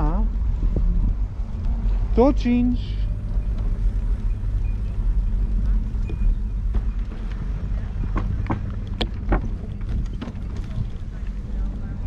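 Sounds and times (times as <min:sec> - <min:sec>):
vehicle rolling on brick path: 0:00.0 - 0:12.0.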